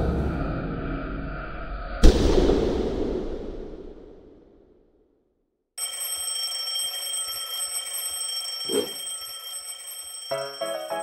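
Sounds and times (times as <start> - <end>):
alarm clock ringing: 5.8 - 11.0.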